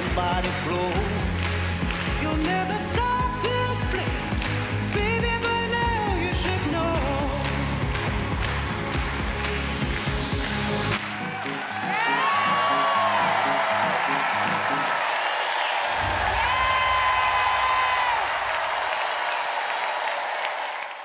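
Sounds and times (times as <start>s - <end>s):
band music: 0.0s - 15.0s
audience applauding and cheering: 0.0s - 21.0s.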